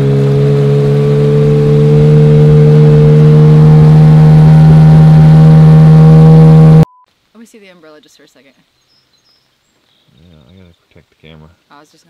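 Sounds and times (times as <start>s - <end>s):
outboard motor droning: 0.0s - 6.9s.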